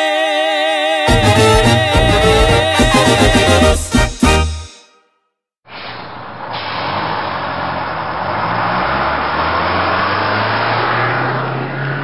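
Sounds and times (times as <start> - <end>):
bus engine drone: 5.7 - 12.0
road noise rushing: 5.7 - 12.0.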